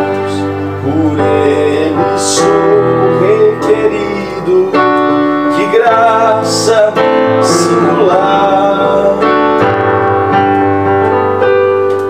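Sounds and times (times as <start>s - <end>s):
person singing: 0.0s - 10.1s
electronic keyboard piano chords: 0.0s - 12.0s.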